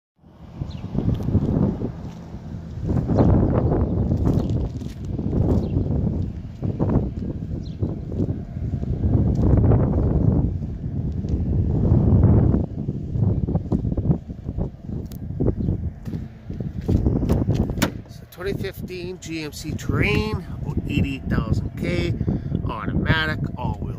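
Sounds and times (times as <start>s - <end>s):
wind buffeting microphone: 0.2s - 23.9s.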